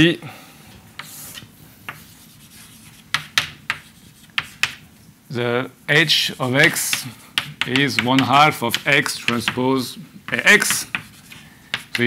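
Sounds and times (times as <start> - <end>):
chalk scratching on blackboard: 1.0 - 4.8, 6.1 - 9.6, 10.3 - 12.0.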